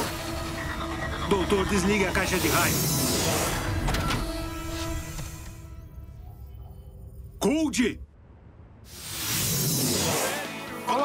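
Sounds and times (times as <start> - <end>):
film score music: 0.0 - 9.0.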